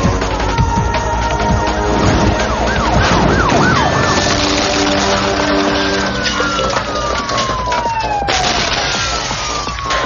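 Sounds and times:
police siren yelping: 0.6s - 10.0s.

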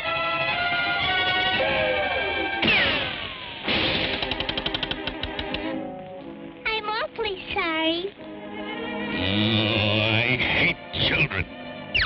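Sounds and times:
cartoon music with sustained tones: 0.0s - 7.1s, 8.2s - 12.0s
fast rattle of clicks: 4.1s - 5.7s.

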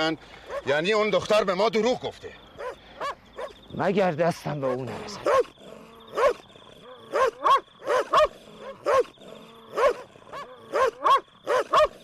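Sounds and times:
dog barking: 0.5s - 0.8s, 2.6s - 3.6s, 4.5s - 12.0s.

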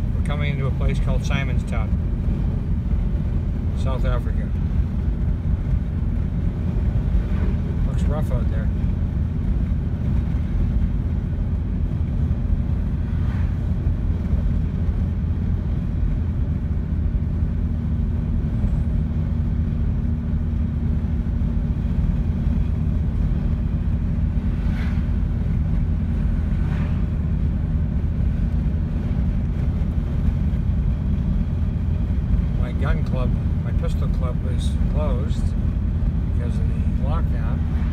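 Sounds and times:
car tyre and engine rumble: 0.0s - 37.9s.

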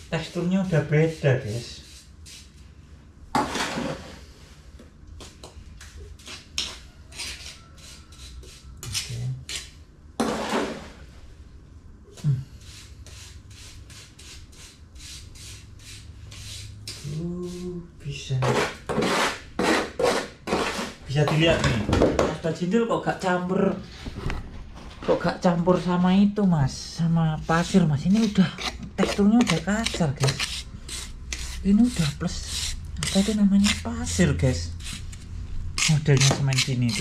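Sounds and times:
metal scraper scraping mortar: 6.2s - 10.9s, 18.4s - 21.5s, 27.4s - 35.2s, 35.8s - 37.0s.

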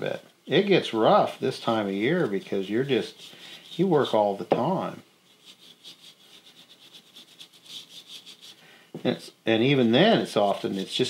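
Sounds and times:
paintbrush strokes on wood: 0.9s - 11.0s.

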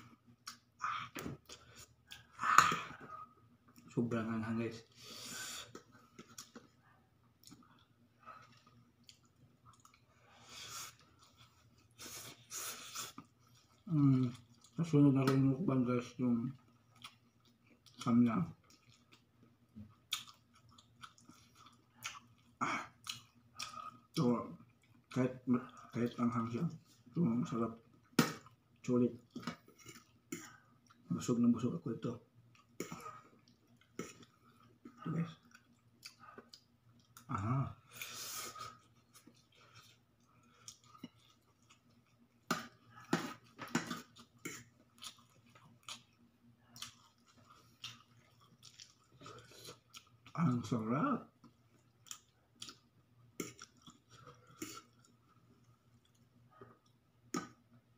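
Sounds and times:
person chewing noodles: 4.8s - 14.9s, 16.6s - 26.2s, 27.8s - 31.1s, 32.4s - 50.4s, 51.3s - 57.7s
wet mouth sounds: 53.4s - 53.8s.

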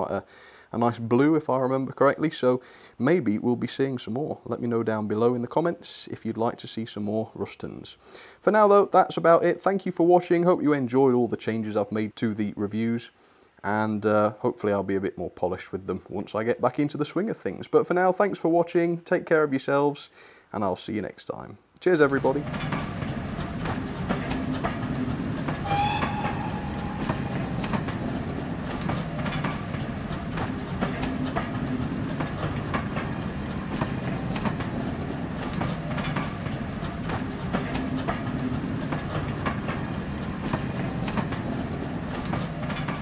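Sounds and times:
train wheels clattering over rail joints: 22.1s - 43.0s
short train whistle: 25.6s - 28.1s.

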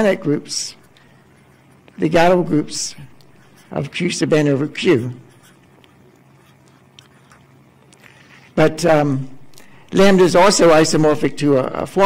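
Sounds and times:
low room hum: 0.0s - 12.0s
marker pen writing on paper: 3.2s - 3.9s, 4.8s - 7.5s.

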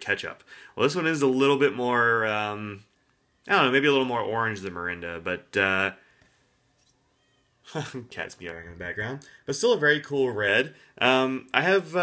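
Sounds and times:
cat meowing faintly: 6.9s - 7.9s.

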